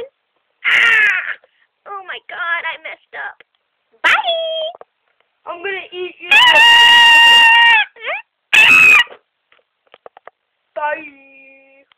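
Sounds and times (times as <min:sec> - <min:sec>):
person screaming: 0:00.6 - 0:01.4, 0:06.3 - 0:09.2.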